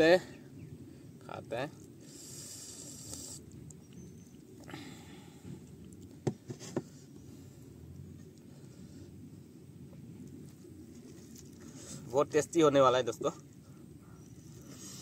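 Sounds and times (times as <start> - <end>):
low background noise: 0.0 - 15.0.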